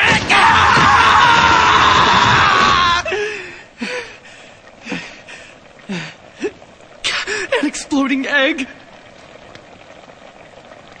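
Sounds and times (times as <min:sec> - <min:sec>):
pot bubbling and popping: 0:04.6 - 0:11.0.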